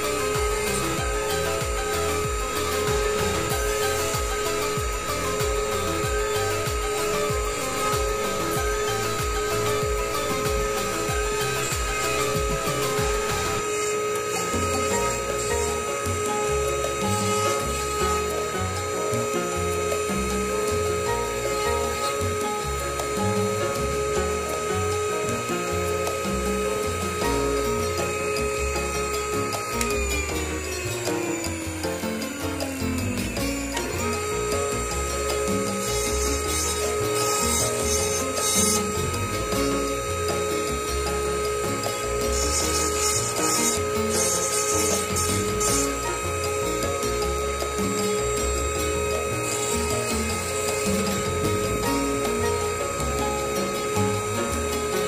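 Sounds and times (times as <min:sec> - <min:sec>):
background music: 0:00.0 - 0:55.0
bench lathe whining: 0:00.0 - 0:55.0.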